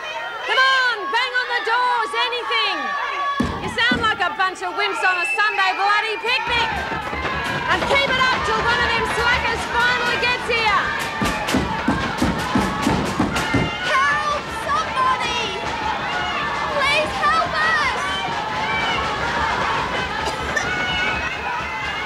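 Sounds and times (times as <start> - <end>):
women shouting and yelling: 0.0 - 22.0.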